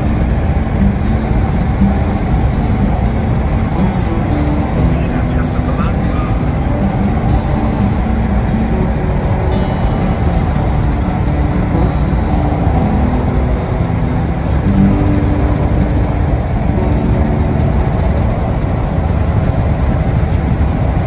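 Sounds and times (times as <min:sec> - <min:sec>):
car cabin road rumble: 0:00.0 - 0:21.0
faint engine hum: 0:00.0 - 0:21.0.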